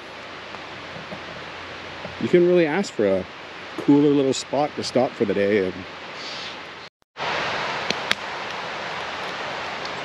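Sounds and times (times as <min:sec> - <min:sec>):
rocky river rushing: 0:00.0 - 0:06.1, 0:07.2 - 0:10.0.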